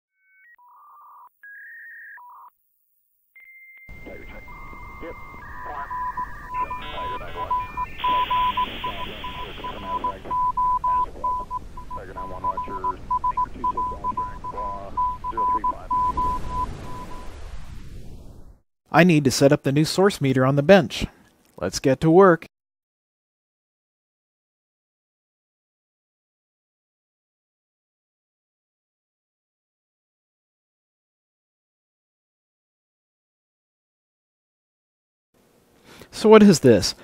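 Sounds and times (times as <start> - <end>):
short beeps like dialing tones: 3.8 - 17.4
tone keyed in morse pattern: 3.9 - 17.2
modem-like chirps: 3.9 - 17.4.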